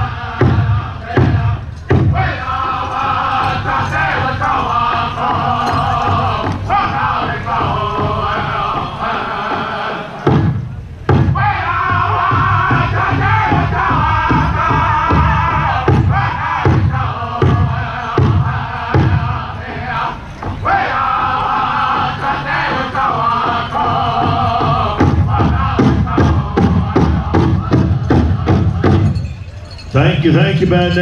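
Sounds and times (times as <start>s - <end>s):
large drum beating: 0.0s - 29.3s
drum group singing in unison: 0.0s - 29.4s.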